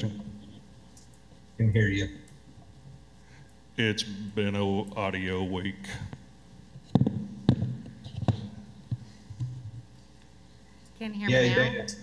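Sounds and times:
faint hum: 0.0s - 12.0s
microphone handling thumps: 6.8s - 9.9s.

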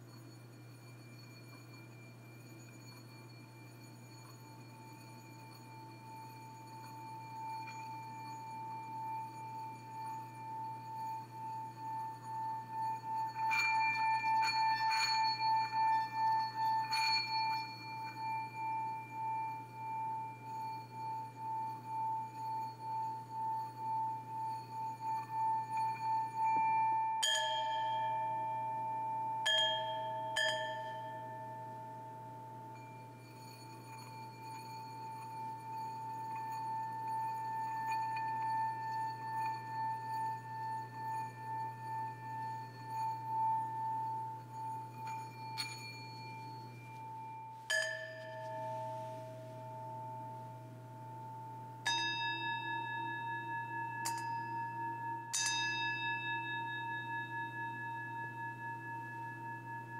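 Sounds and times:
singing bowl rim tone: 0.0s - 59.9s
stick clinking on bowl rim: 0.0s - 59.9s
struck bowl ringing: 0.0s - 59.9s.

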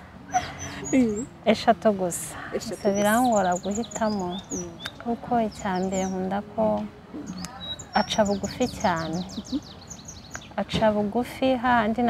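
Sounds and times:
faint bird chirps: 0.3s - 1.3s, 7.2s - 10.6s.

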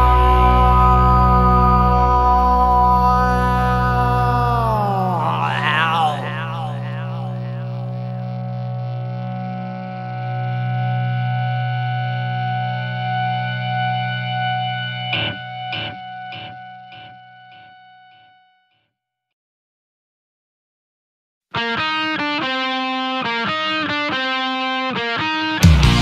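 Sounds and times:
distorted electric guitar chord ringing: 0.0s - 18.1s.

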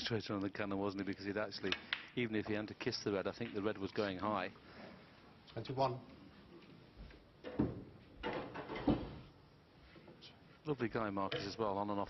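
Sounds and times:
snooker balls clicking: 3.3s - 4.0s.

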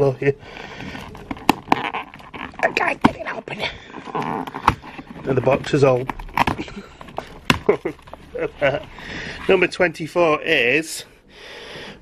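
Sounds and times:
stiff cardboard snapping: 1.2s - 3.4s, 4.1s - 8.0s.

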